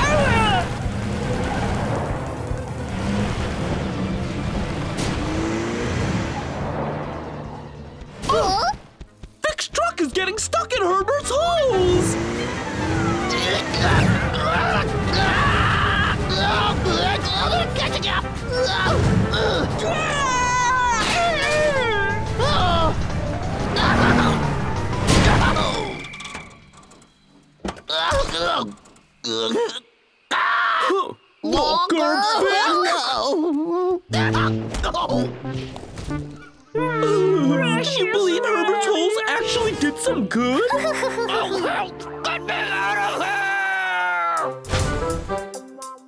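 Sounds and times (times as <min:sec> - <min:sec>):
cartoon crash sound effects: 0:18.7 - 0:26.6
man groaning: 0:36.8 - 0:38.7.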